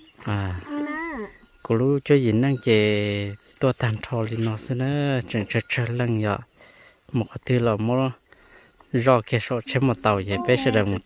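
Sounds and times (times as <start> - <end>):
high insect trill: 0.0 - 11.0
people talking: 0.2 - 6.4, 7.2 - 8.2, 9.0 - 11.0.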